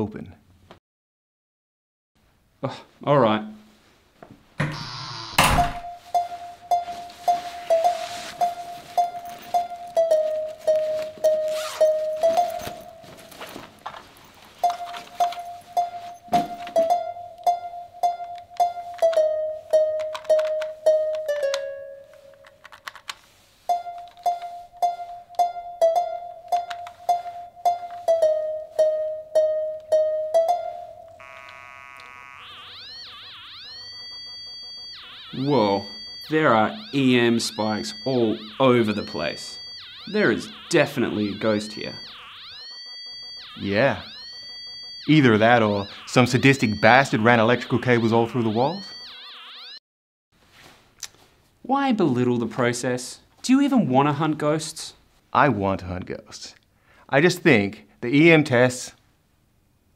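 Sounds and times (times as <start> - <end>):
door shutting: 4.6 - 6.0
warbling electronic tone: 31.0 - 49.8.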